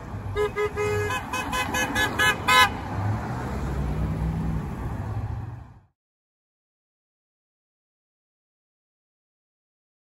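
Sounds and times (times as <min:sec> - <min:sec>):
cars passing: 0:00.0 - 0:06.0
vehicle horn honking: 0:00.3 - 0:02.8.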